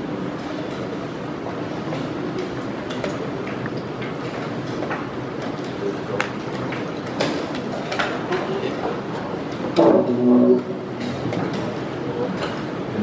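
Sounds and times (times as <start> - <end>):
din of voices in a hall: 0.0 - 13.0.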